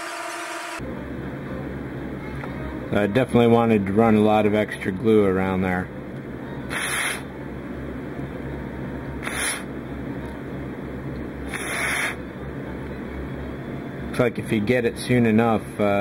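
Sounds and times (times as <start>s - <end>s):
steady low hum: 0.0s - 16.0s
hissing air puffs: 6.7s - 7.3s, 9.2s - 9.7s, 11.5s - 12.2s.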